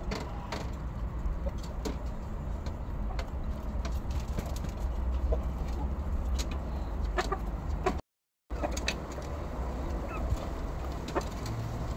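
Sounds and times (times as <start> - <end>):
hens clucking: 4.2 - 6.0, 7.0 - 11.5.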